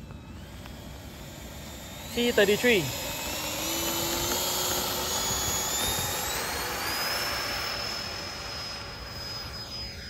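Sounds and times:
electric ducted fan whine: 0.0 - 10.0.

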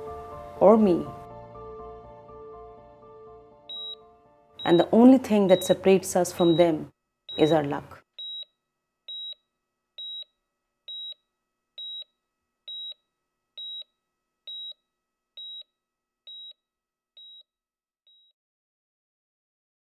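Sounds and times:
patient monitor beeps: 3.7 - 4.0, 4.6 - 8.5, 9.1 - 9.4, 10.0 - 10.3, 10.9 - 11.2, 11.8 - 12.1, 12.7 - 13.0, 13.6 - 13.9, 14.5 - 14.8, 15.4 - 15.7, 16.3 - 16.6, 17.2 - 17.4.

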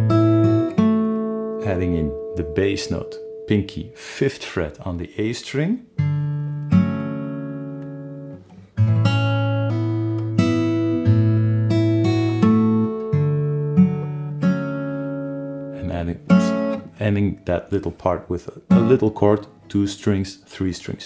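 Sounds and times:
fingerstyle acoustic guitar: 0.0 - 4.0, 6.0 - 19.7
person speaking: 1.6 - 5.9, 15.8 - 21.0.

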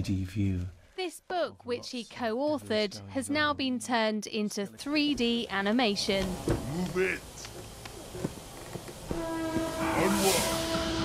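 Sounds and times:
steam hiss: 6.0 - 11.0
steam locomotive whistle: 9.1 - 11.0.

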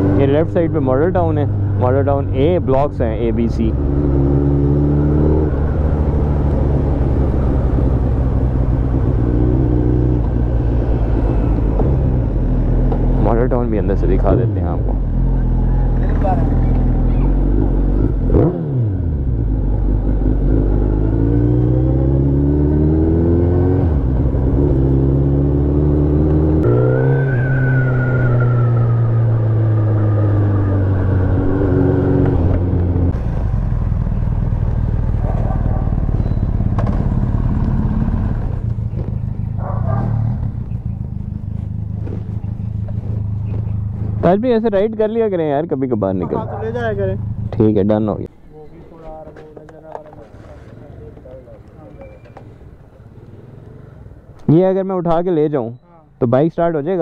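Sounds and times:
motorcycle engine revving through gears: 0.0 - 44.4.

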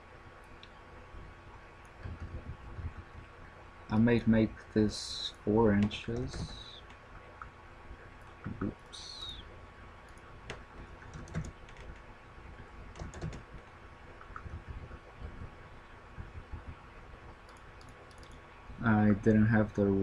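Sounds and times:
faint steady hum: 0.0 - 20.0
keyboard and mouse clicks: 5.8 - 7.5, 10.1 - 12.1, 12.9 - 15.4, 17.4 - 18.4.

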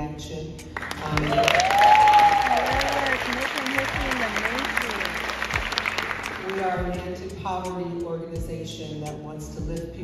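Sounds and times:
audience applauding and cheering: 0.8 - 6.8
long whoop: 1.3 - 3.0.

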